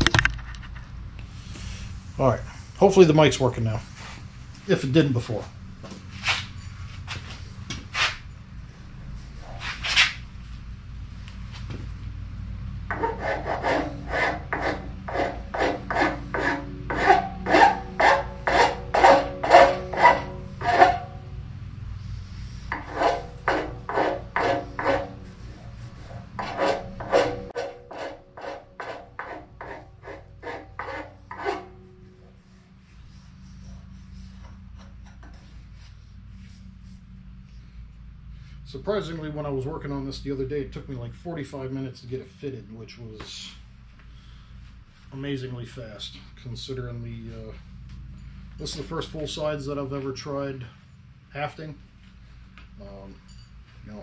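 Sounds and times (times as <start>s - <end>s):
hand tool scraping wood: 12.9s - 21.3s, 22.2s - 32.4s.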